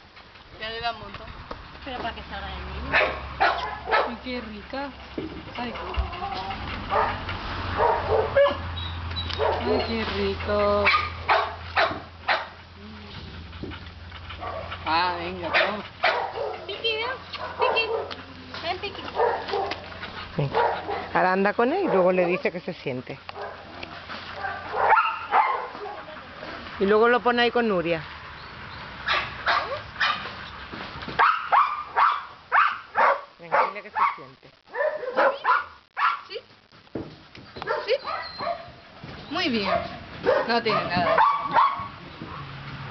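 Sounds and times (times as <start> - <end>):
dog barking: 2.9 - 4.2, 5.6 - 8.7, 9.4 - 9.8, 10.8 - 12.6, 14.4 - 14.7, 15.4 - 18.2, 19.1 - 19.8, 20.4 - 21.2, 23.4 - 23.8, 24.4 - 26.1, 29.1 - 30.3, 31.2 - 36.4, 37.6 - 38.8, 39.6 - 42.5.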